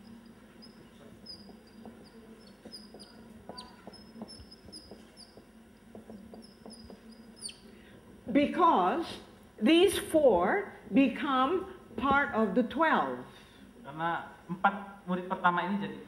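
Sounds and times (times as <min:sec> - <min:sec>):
marker squeaking on a whiteboard: 0:00.0 - 0:07.8.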